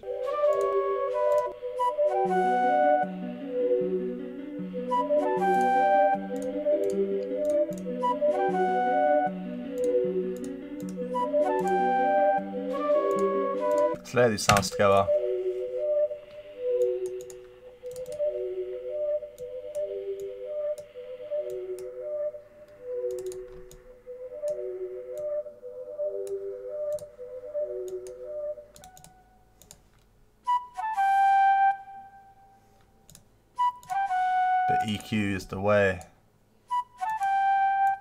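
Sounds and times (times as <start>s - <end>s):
flute and bell melody: 0.0s - 29.5s, 30.5s - 32.6s, 33.6s - 35.4s, 36.7s - 38.0s
faint clicks: 9.8s - 11.0s, 16.3s - 18.2s, 22.7s - 23.8s, 27.8s - 30.1s.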